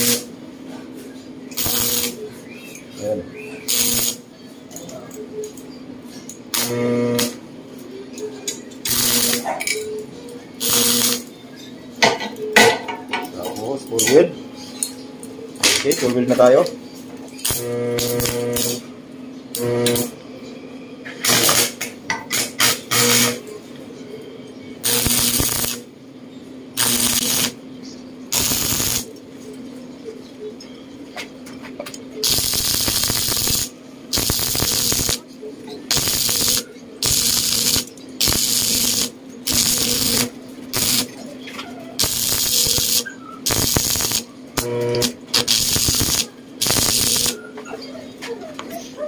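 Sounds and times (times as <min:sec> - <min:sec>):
crackling welding arc bursts: 0:00.0 - 0:00.3, 0:01.5 - 0:02.2, 0:03.6 - 0:04.2, 0:06.5 - 0:07.4, 0:08.8 - 0:09.5, 0:10.6 - 0:11.3, 0:17.4 - 0:18.8, 0:19.6 - 0:20.2, 0:21.2 - 0:23.4, 0:24.8 - 0:25.9, 0:26.8 - 0:27.6, 0:28.3 - 0:29.1, 0:32.2 - 0:35.2, 0:35.9 - 0:41.2, 0:42.0 - 0:47.4
welding machine humming: 0:00.0 - 0:00.4, 0:01.5 - 0:02.3, 0:03.6 - 0:04.3, 0:06.5 - 0:07.4, 0:08.8 - 0:09.8, 0:10.5 - 0:11.3, 0:17.4 - 0:18.9, 0:19.5 - 0:20.2, 0:21.2 - 0:23.5, 0:24.8 - 0:25.9, 0:26.7 - 0:27.6, 0:28.3 - 0:29.2, 0:32.2 - 0:35.3, 0:35.9 - 0:41.2, 0:42.0 - 0:47.4.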